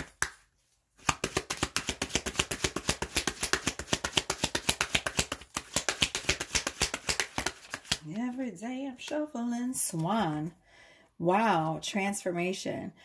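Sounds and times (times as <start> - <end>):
cards being shuffled: 0.0 - 8.4.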